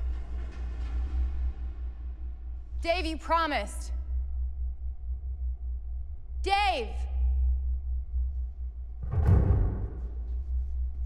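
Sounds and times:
low droning film score: 0:00.0 - 0:11.0.

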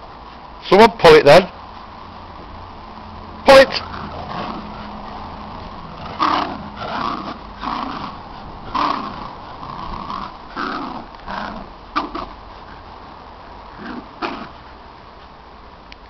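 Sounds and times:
dogs growling in play: 0:03.6 - 0:12.9, 0:13.7 - 0:14.6.

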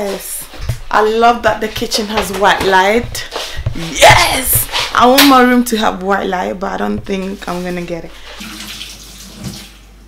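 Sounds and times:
tap water running into sink: 0:08.2 - 0:09.9.

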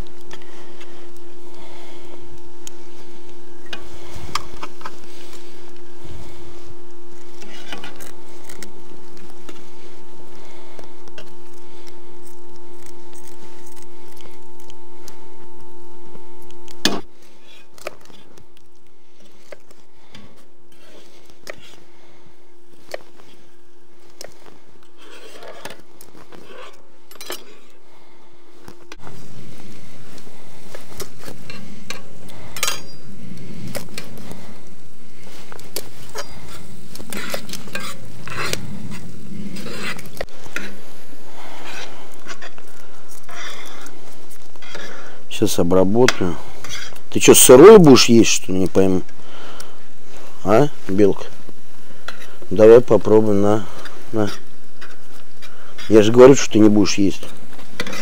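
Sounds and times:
steady hiss: 0:00.0 - 0:58.0
steady hum: 0:00.0 - 0:58.0.

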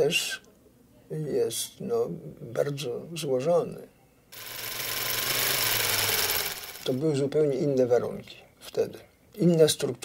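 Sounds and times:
film projector clattering: 0:04.4 - 0:07.2.

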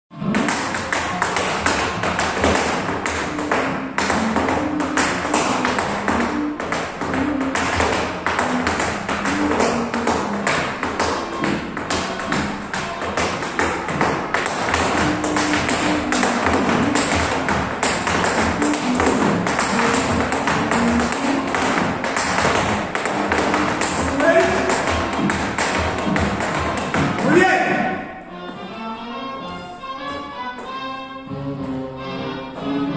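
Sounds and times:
recorded music with melody: 0:00.1 - 0:32.9
tap shoes on hard floor: 0:00.2 - 0:32.9.

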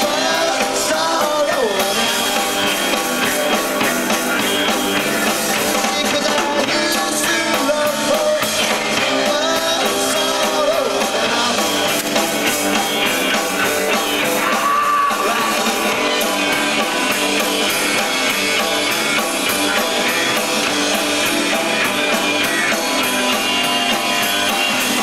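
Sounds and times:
bass guitar: 0:00.0 - 0:25.0
drum kit: 0:00.0 - 0:25.0
electric guitar: 0:00.0 - 0:25.0.

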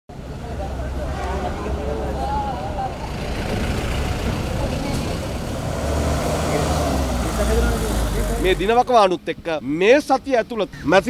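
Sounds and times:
people's voices: 0:00.1 - 0:11.0
road traffic rumble: 0:00.1 - 0:11.0.

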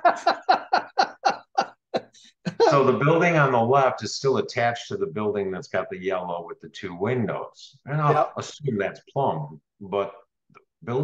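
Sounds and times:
man laughing heartily: 0:00.0 - 0:03.0.

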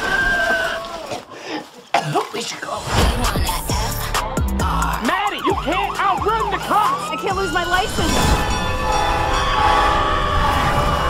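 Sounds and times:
train air horn blast: 0:08.2 - 0:11.0.

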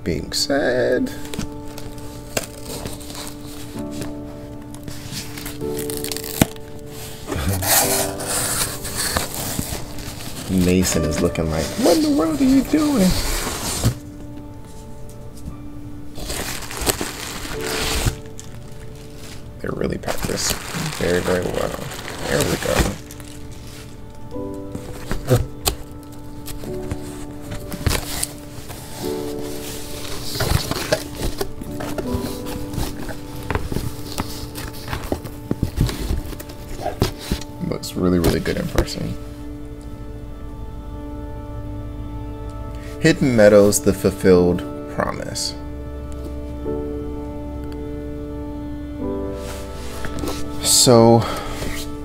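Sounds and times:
soft background music: 0:00.0 - 0:52.0
cardboard and bubble-wrap rustling: 0:01.0 - 0:14.8, 0:16.1 - 0:39.2, 0:49.3 - 0:52.0.

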